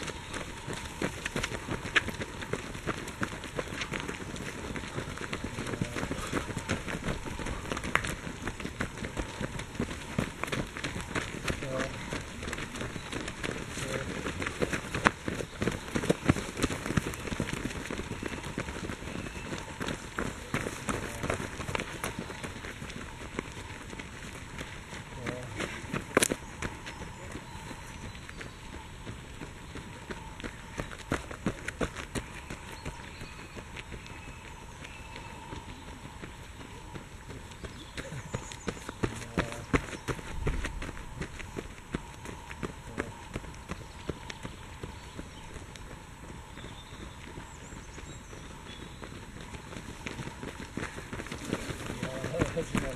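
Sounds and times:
footfalls on leaf-strewn dirt trail: 0:00.0 - 0:52.9.

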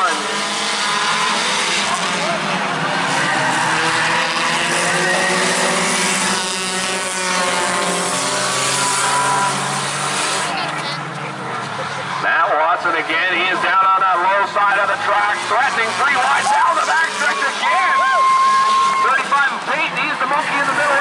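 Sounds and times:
race car engines revving: 0:00.0 - 0:21.0.

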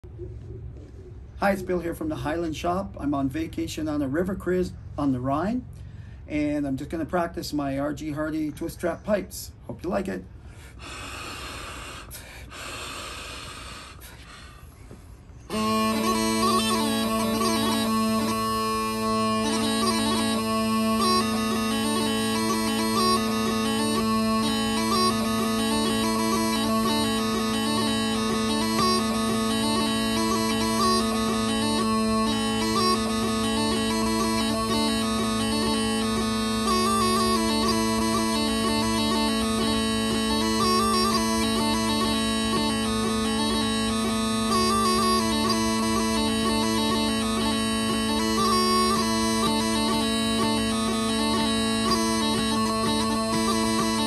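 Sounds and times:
chanter jig melody: 0:15.5 - 0:54.0
steady pipe drone: 0:15.5 - 0:54.0.

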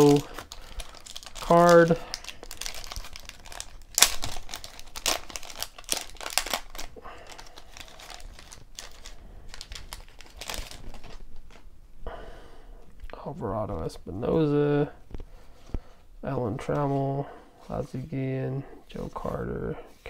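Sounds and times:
wrapper crinkling and tearing: 0:00.0 - 0:11.6.

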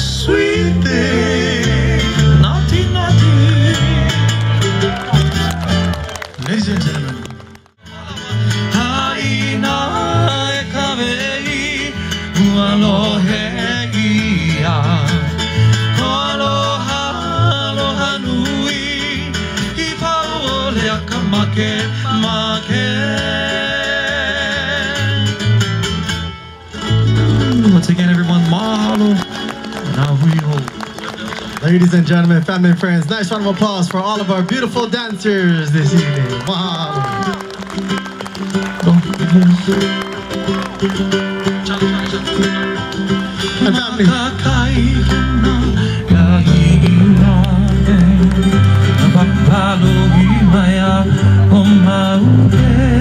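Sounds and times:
person singing: 0:00.0 - 0:04.3, 0:43.6 - 0:53.0
hula music on guitar and bass: 0:00.0 - 0:53.0.

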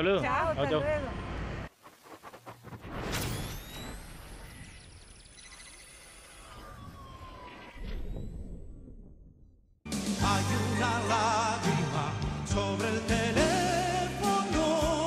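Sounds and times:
whoosh hit: 0:01.8 - 0:04.7.

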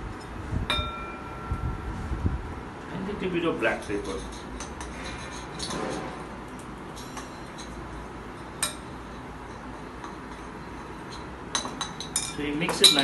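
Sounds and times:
steady low hum: 0:00.0 - 0:13.0
glass and utensils clinking: 0:09.5 - 0:13.0.

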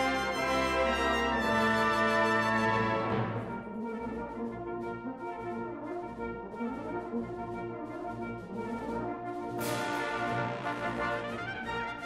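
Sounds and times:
brass band playing held chords: 0:00.0 - 0:04.5, 0:06.5 - 0:12.0.

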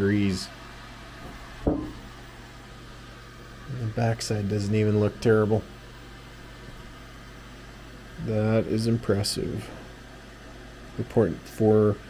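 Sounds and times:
steady low hum: 0:00.0 - 0:12.0
sharp knock of handled object: 0:01.7 - 0:02.0.

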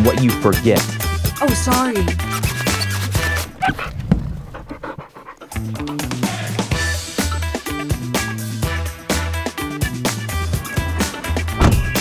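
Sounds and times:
music: 0:00.0 - 0:03.6, 0:05.1 - 0:12.0
dog panting: 0:02.4 - 0:06.7.

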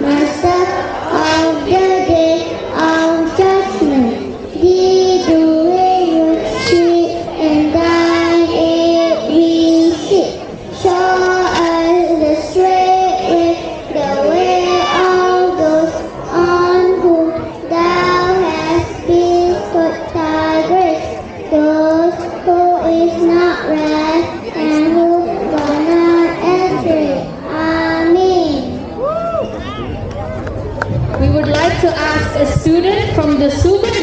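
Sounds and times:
child chanting melodically: 0:00.0 - 0:28.9.

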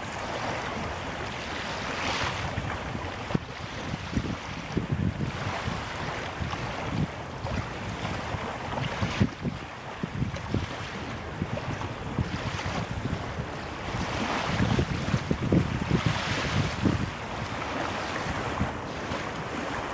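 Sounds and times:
waves on open water: 0:00.0 - 0:19.9
wind buffeting microphone: 0:00.0 - 0:19.9.

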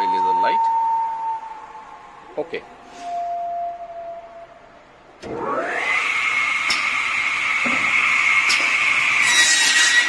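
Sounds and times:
saw motor whining: 0:05.2 - 0:10.0.

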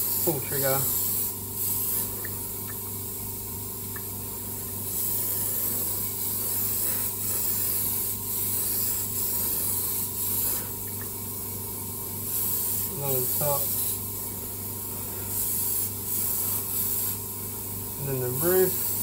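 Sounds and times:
airbrush hissing: 0:00.0 - 0:02.6, 0:04.4 - 0:19.0.

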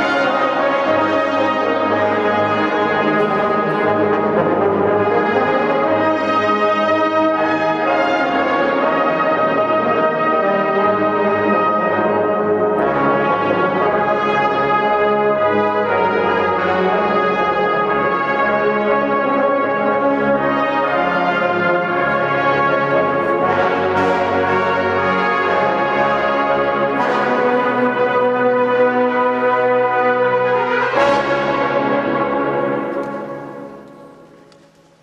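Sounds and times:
brass ensemble playing chords: 0:00.0 - 0:34.6.

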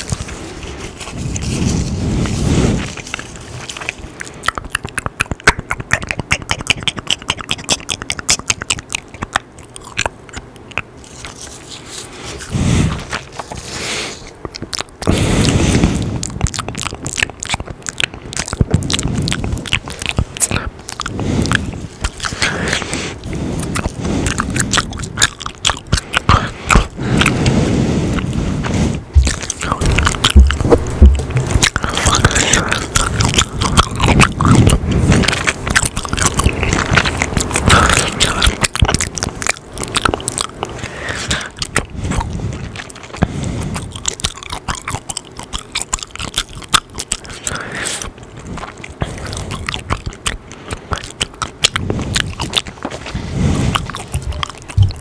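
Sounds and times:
gum chewing mouth sounds: 0:00.0 - 0:55.0.

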